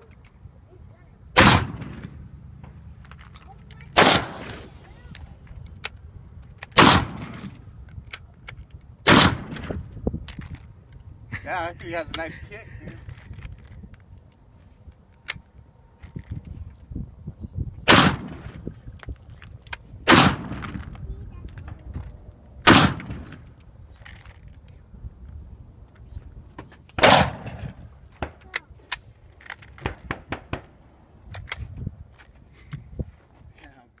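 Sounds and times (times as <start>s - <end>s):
rifle shots: 1.4s - 2.2s, 4.0s - 4.8s, 6.7s - 7.6s, 9.0s - 9.8s, 17.9s - 18.6s, 20.0s - 20.8s, 22.6s - 23.4s, 27.0s - 28.4s.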